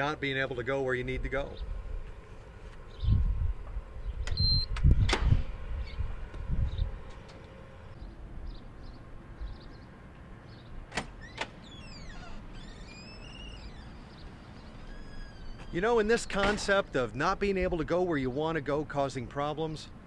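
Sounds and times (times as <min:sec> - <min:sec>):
card reader beep: 0:04.3 - 0:04.8
squeaky falling chirps: 0:11.2 - 0:15.8.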